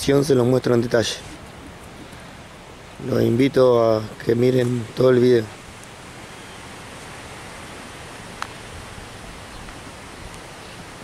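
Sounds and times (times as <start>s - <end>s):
wind rush on microphone: 8.1s - 11.0s.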